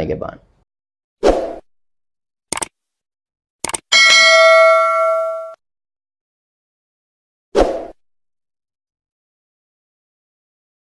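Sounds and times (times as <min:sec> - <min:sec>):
bell ding: 0:03.9 - 0:05.6.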